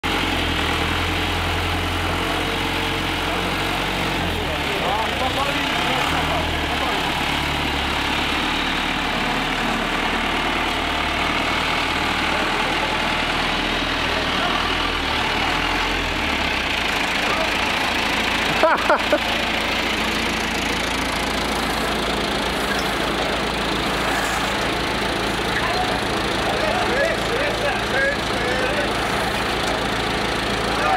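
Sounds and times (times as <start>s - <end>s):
tractor engine rumbling: 0.0s - 30.9s.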